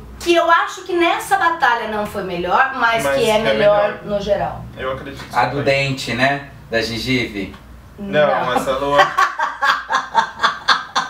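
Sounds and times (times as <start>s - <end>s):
man laughing: 8.5s - 11.0s
woman laughing: 8.5s - 11.0s.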